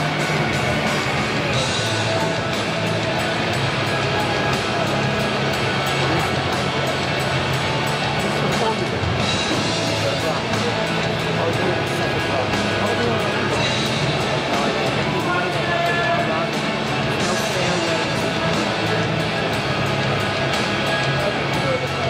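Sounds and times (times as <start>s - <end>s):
murmur of voices: 0.0s - 22.0s
rock music over loudspeakers: 0.0s - 22.0s.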